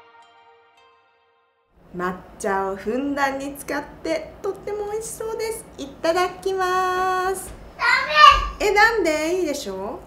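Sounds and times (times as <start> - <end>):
woman speaking: 1.9 - 7.6, 8.6 - 10.0.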